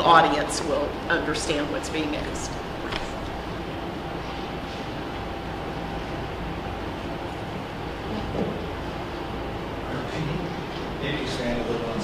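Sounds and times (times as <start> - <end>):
faint steady hum: 0.0 - 12.0
room noise rumble and hiss: 0.0 - 12.0.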